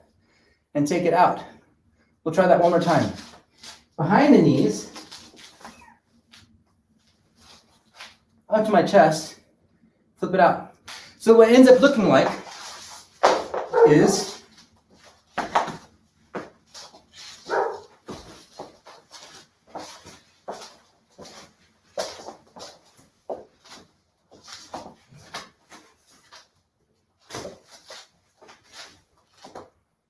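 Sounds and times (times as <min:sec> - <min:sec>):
feet scuffing wooden floor: 0:12.2 - 0:26.5, 0:27.2 - 0:29.8
plastic hoop on wooden floor: 0:13.1 - 0:14.5, 0:15.3 - 0:16.6.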